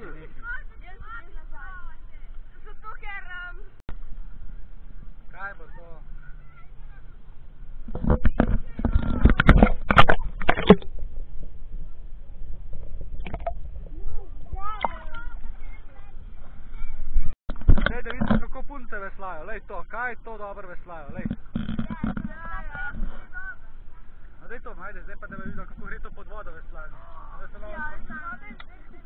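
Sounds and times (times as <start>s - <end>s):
loud water splashing: 9.2s - 11.1s.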